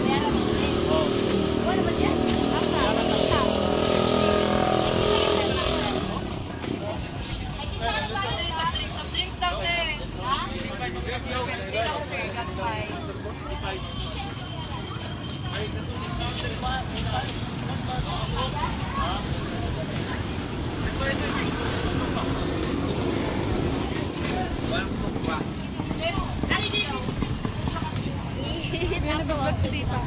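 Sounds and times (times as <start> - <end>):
people talking: 0.0 - 30.0
road traffic rumble: 0.0 - 30.0.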